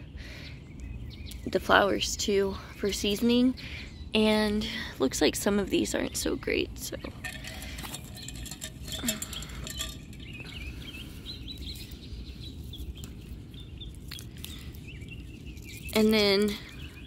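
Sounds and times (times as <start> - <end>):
small birds chirping: 0.0 - 17.0
leaves rustling: 7.1 - 17.0
clicks of stems being pinched: 12.7 - 16.5.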